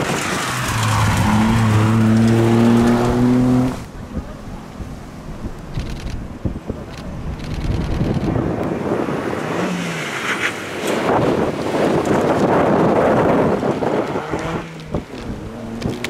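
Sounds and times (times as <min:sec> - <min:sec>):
rally car passing at speed: 0:00.0 - 0:03.9, 0:08.3 - 0:16.0.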